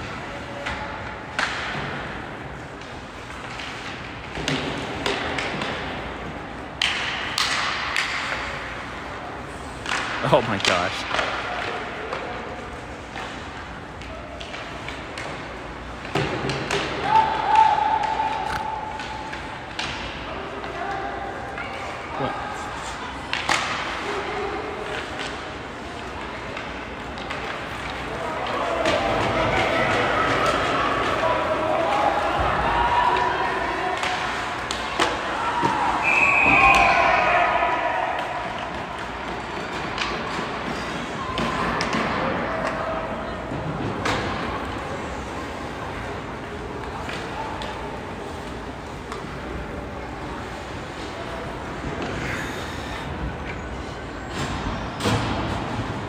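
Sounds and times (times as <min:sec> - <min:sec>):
distant shouting voices: 0:17.0 - 0:19.6, 0:28.2 - 0:38.8.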